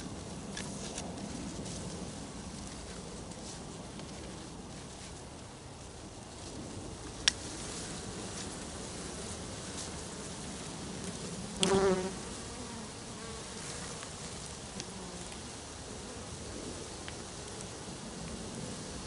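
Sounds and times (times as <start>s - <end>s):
bee flying past close: 11.5s - 15.3s
bee swarm buzzing: 11.5s - 15.3s.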